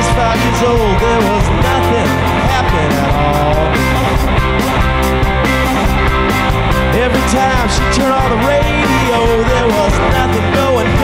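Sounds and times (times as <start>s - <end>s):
bass and drums: 0.0s - 11.0s
electric guitars bending notes: 0.0s - 11.0s.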